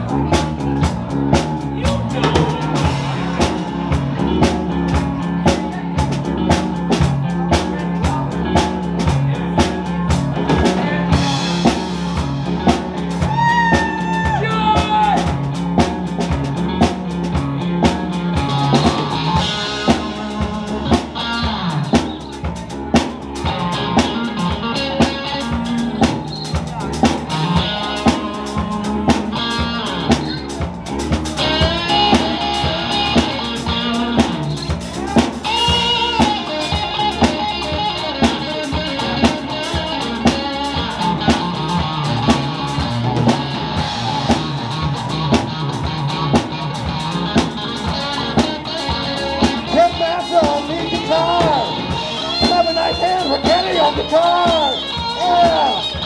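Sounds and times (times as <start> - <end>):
bass: 0.0 - 56.0
drum kit beat: 0.0 - 56.0
electric guitar: 0.0 - 56.0.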